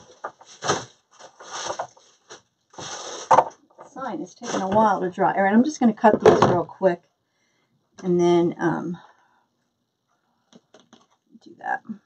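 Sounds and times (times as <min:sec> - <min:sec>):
craft materials rustling: 0:00.0 - 0:05.0.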